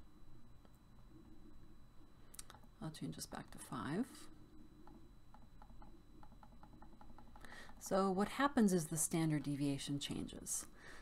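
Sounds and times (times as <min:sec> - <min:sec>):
faint room hum: 0:00.0 - 0:11.0
computer mouse clicks: 0:04.8 - 0:07.9.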